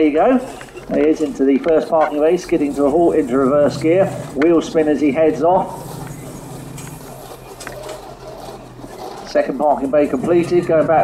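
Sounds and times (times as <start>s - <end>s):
car engine running: 2.1s - 11.0s.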